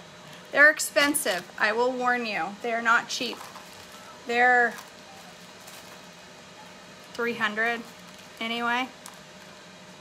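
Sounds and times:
air fryer fan hissing: 0.0s - 10.0s.

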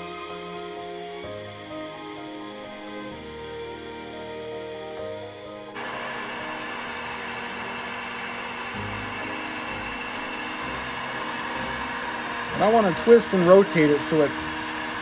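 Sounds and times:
heat gun blowing: 0.0s - 15.0s
soft background music: 0.0s - 15.0s.

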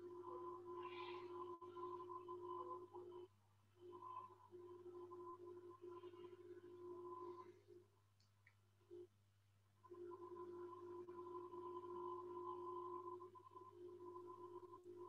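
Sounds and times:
faint low hum: 0.0s - 15.0s
faint steady tones: 0.0s - 15.0s.

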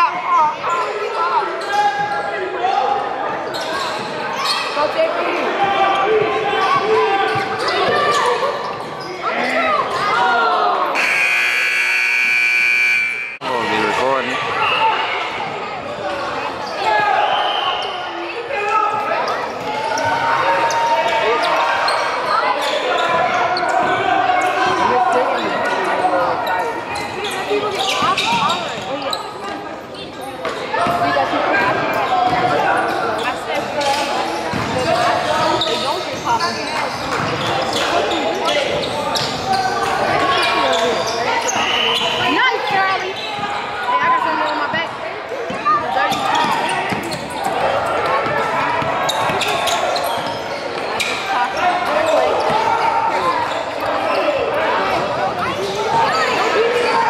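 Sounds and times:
scoreboard buzzer: 11.0s - 13.5s.

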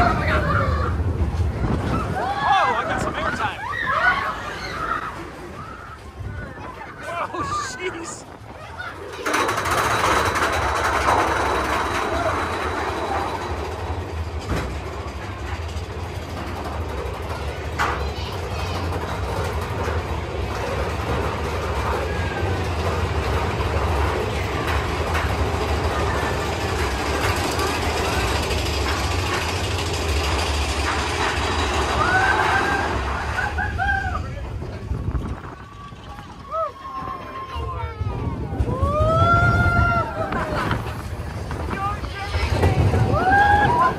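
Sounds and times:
roller coaster rumble and clatter: 0.0s - 43.9s.

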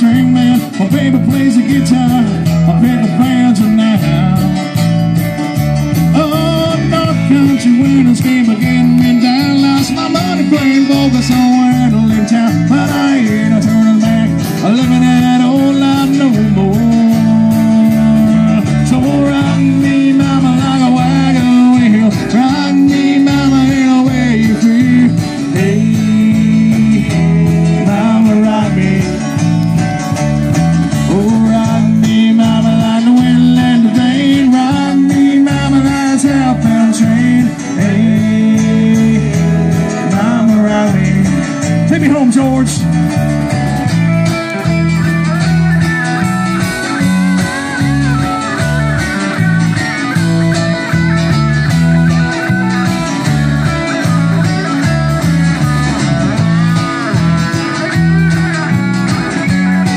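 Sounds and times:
acoustic guitar: 0.0s - 59.9s
drum kit: 0.0s - 59.9s
electric bass: 0.0s - 59.9s
electric guitar: 0.0s - 59.9s.

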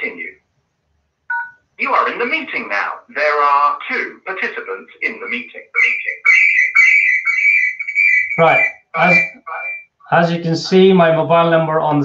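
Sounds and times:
high-pitched audio feedback whistle: 6.2s - 9.9s.

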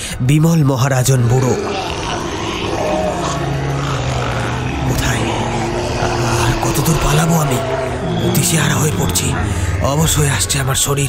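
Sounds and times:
low steady drone: 0.0s - 11.0s
creature roaring: 0.9s - 11.0s.

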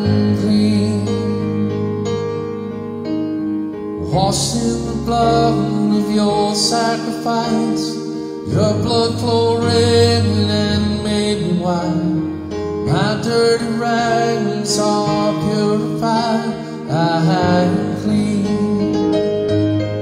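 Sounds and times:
man singing into a microphone: 0.0s - 1.9s, 4.0s - 19.7s.

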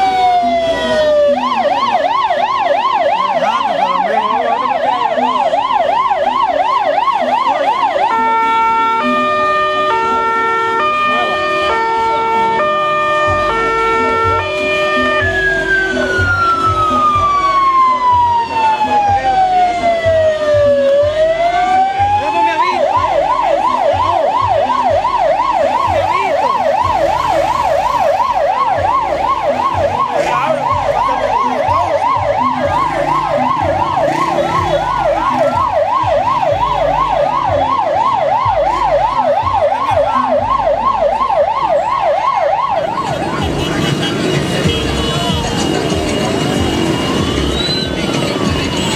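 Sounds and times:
fire truck electronic siren: 0.0s - 48.9s.

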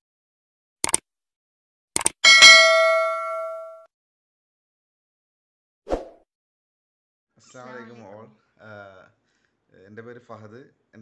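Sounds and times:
quick clicks: 0.8s - 1.0s, 2.0s - 2.2s
notification bell ding: 2.2s - 3.9s.

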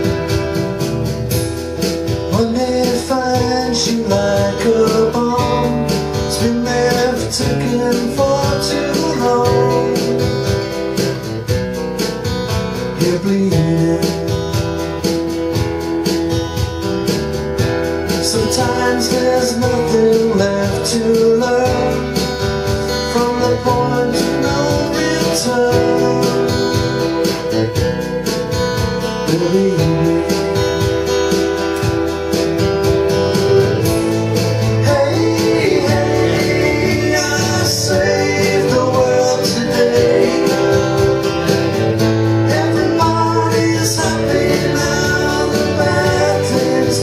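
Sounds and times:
acoustic guitar strumming: 0.0s - 47.0s.

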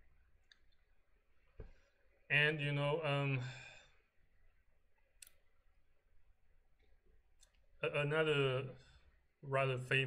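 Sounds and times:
man speaking: 2.3s - 3.8s, 7.8s - 10.0s
faint sharp clicks: 5.0s - 5.4s.

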